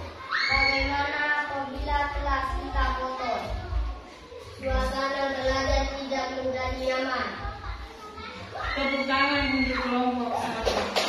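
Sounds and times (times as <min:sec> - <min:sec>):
children's voices: 0:00.0 - 0:10.6
background music: 0:00.0 - 0:11.0.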